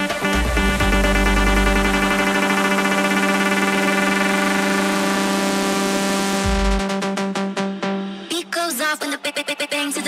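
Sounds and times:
deep bass note: 0:00.0 - 0:07.9
sustained synthesizer chord: 0:00.0 - 0:08.3.

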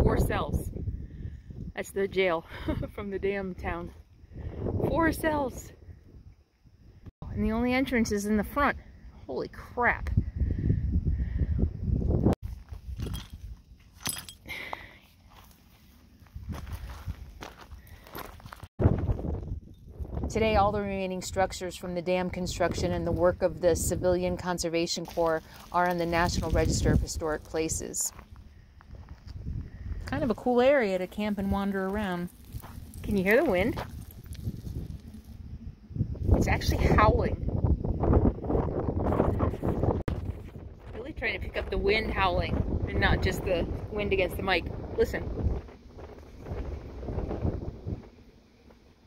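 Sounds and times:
wind buffeting microphone: 0:00.0 - 0:13.6, 0:16.2 - 0:49.0
footsteps on gravel: 0:15.0 - 0:19.3, 0:25.0 - 0:35.4.

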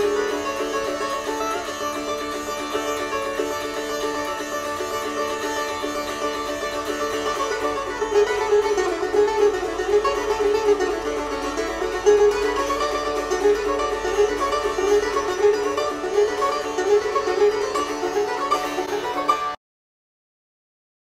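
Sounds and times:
sitar plucked melody: 0:00.0 - 0:19.6.

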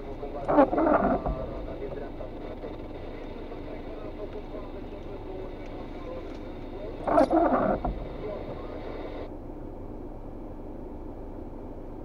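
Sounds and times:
car idling inside cabin: 0:00.0 - 0:09.3.

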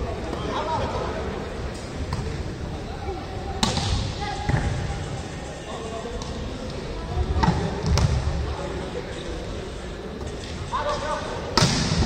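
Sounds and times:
players and spectators voices: 0:00.0 - 0:12.0.

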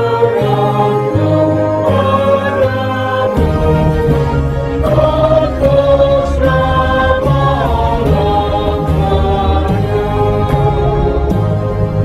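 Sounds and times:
slow choral church music: 0:00.0 - 0:12.0
steady low bass: 0:01.4 - 0:12.0.

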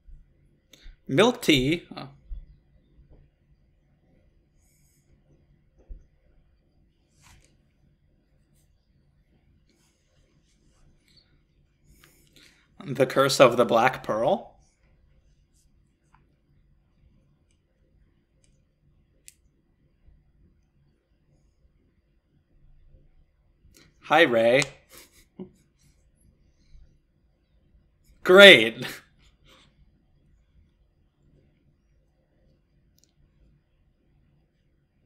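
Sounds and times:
faint low hum: 0:00.0 - 0:35.0.

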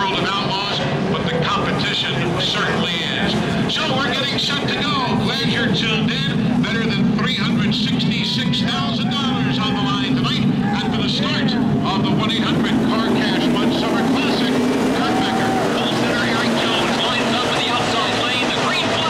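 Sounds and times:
racing truck engines passing: 0:00.0 - 0:19.0.

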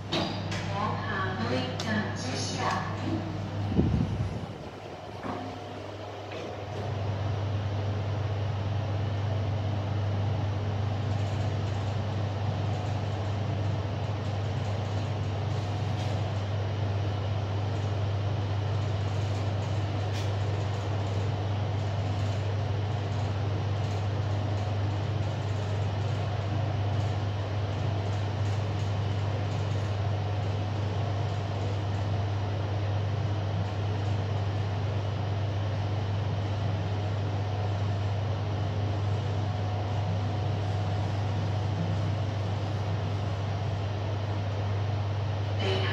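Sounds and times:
elevator descending: 0:00.0 - 0:08.7.

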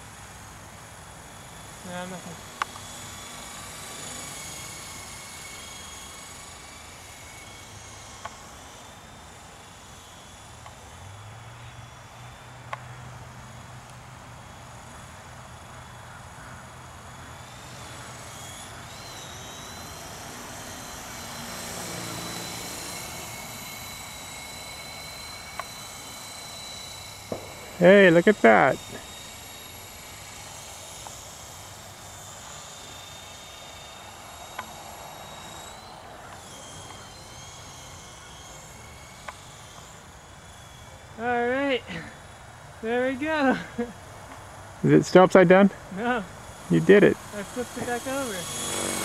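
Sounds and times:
rc helicopter motor whine: 0:00.0 - 0:49.0.

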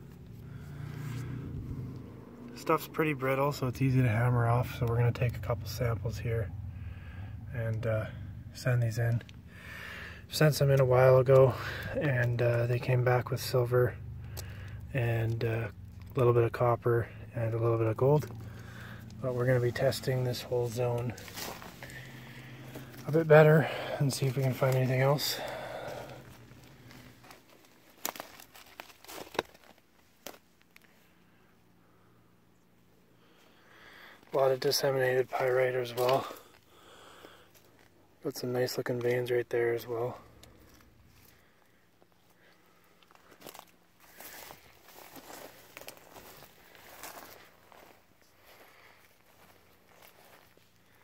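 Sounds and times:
footsteps crunching on scree: 0:17.4 - 0:30.5, 0:34.2 - 0:38.0, 0:43.0 - 0:51.0.

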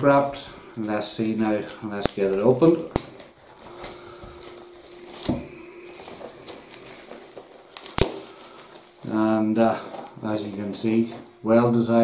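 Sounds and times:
plastic shrink wrap crinkling: 0:00.0 - 0:12.0.

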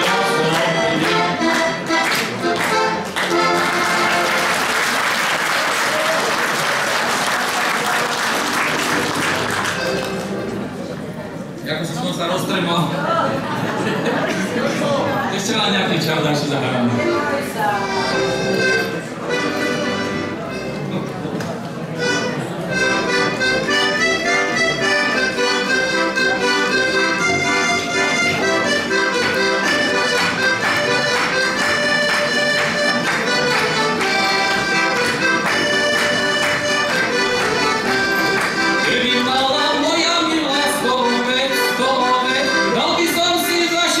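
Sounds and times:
button accordion folk tune: 0:00.0 - 0:05.4, 0:07.7 - 0:10.8, 0:15.8 - 0:44.0
man singing: 0:38.8 - 0:44.0.

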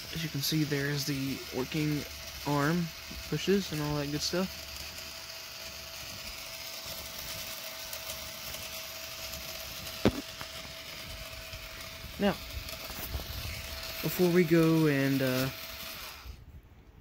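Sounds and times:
plastic coin pusher machine running: 0:00.0 - 0:16.4.

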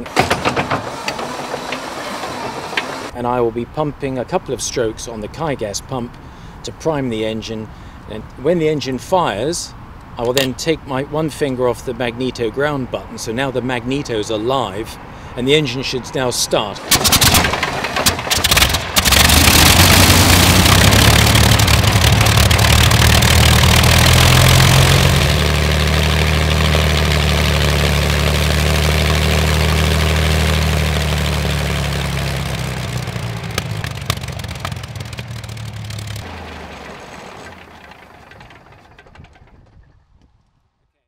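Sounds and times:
aero engine running loud: 0:00.0 - 0:03.2, 0:16.8 - 0:39.5
engine cranking: 0:00.0 - 0:03.2, 0:16.8 - 0:40.2
aero engine backfire bangs: 0:16.8 - 0:26.6, 0:33.1 - 0:39.6.

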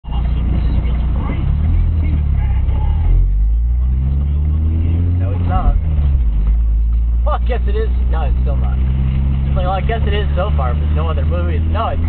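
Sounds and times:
car engine: 0:00.0 - 0:12.0
low road rumble: 0:00.0 - 0:12.0.

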